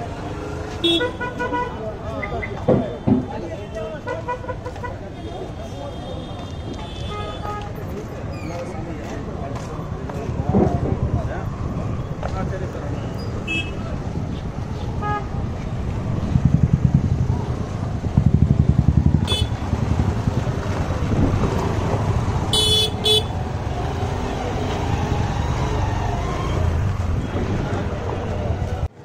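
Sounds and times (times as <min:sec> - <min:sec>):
heavy street traffic: 0:00.0 - 0:29.0.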